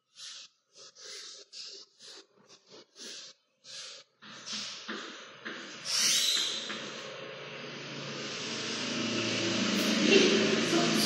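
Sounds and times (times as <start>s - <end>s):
steady rushing noise: 6.7s - 11.0s.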